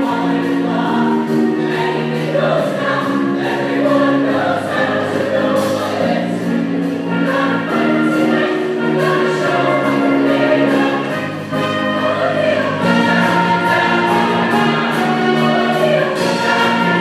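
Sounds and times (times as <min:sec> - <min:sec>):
choir singing in harmony: 0:00.0 - 0:17.0
live pit band: 0:00.0 - 0:17.0.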